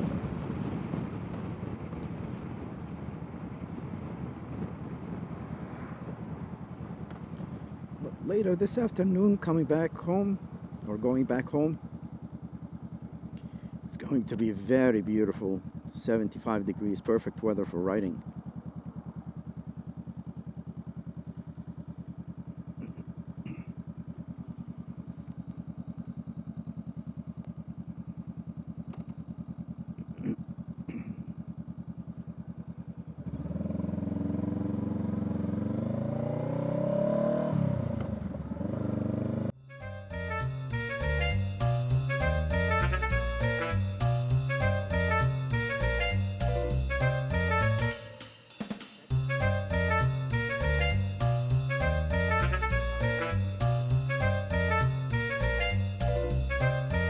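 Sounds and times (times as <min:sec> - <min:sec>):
motorcycle engine idling and revving: 0:00.0 - 0:57.0
background music with drums: 0:39.7 - 0:57.0.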